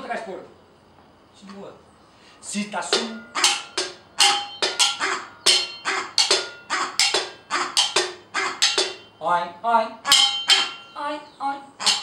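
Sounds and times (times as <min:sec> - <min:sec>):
frying pans struck as drums: 0:02.9 - 0:09.2, 0:10.1 - 0:10.9.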